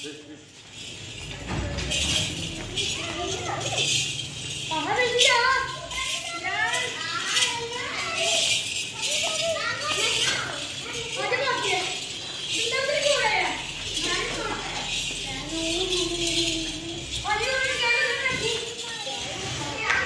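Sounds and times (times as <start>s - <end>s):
adult voices: 0.0s - 20.0s
children calling and chattering: 0.0s - 20.0s.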